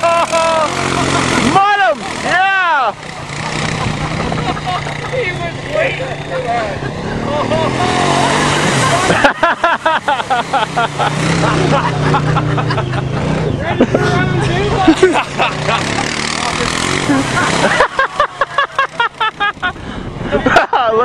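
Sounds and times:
laughter: 0:00.0 - 0:01.5, 0:03.6 - 0:05.4, 0:06.6 - 0:21.0
small vehicle engine running: 0:00.0 - 0:20.4
person shouting: 0:01.5 - 0:03.0.

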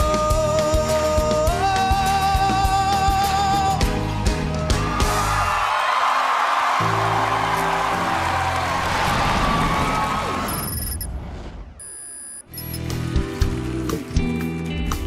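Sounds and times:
backing music: 0:00.0 - 0:05.5
audience applause and cheering: 0:03.7 - 0:10.6.

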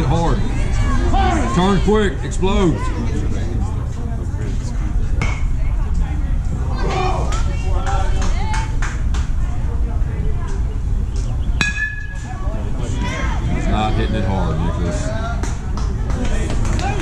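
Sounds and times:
voices calling out: 0:00.0 - 0:17.0
metal bat pinging ball: 0:11.6 - 0:12.3.

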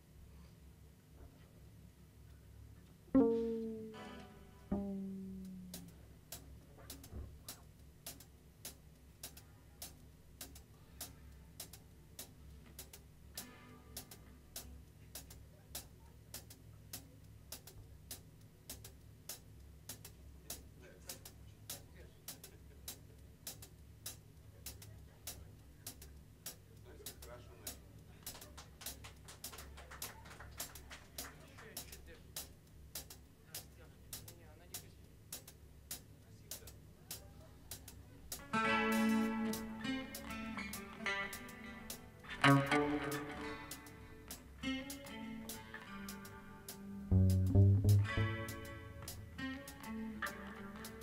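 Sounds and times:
soft cymbal ticks: 0:02.2 - 0:51.0
double bass: 0:03.2 - 0:06.2, 0:41.8 - 0:44.2, 0:46.8 - 0:50.3
guitar run of notes: 0:38.5 - 0:44.0, 0:47.1 - 0:50.8.

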